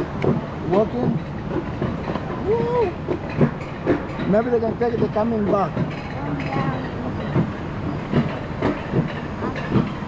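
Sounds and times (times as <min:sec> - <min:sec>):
coaster sled rattling on rail: 0:00.0 - 0:10.0.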